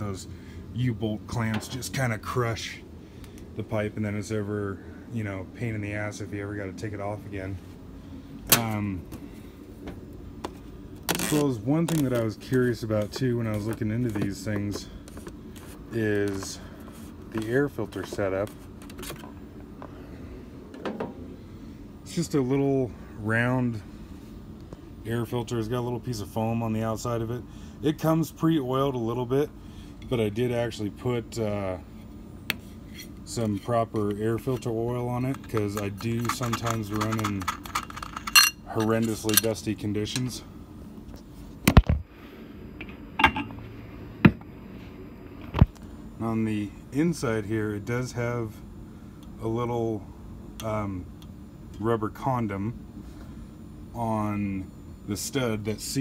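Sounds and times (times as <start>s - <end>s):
engine cover being handled: 8.5s - 19.4s, 20.7s - 21.2s, 32.5s - 40.3s, 42.8s - 43.6s.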